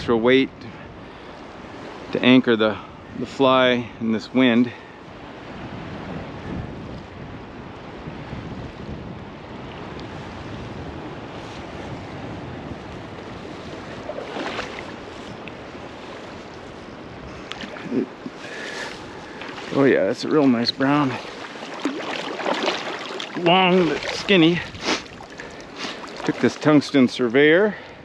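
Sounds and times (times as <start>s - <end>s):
wind buffeting microphone: 0.0s - 28.0s
river water flowing: 9.4s - 28.0s.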